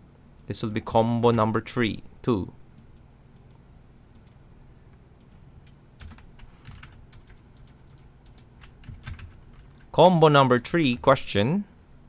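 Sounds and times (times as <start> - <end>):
low steady hum: 0.0 - 12.0
keyboard typing: 5.2 - 9.9.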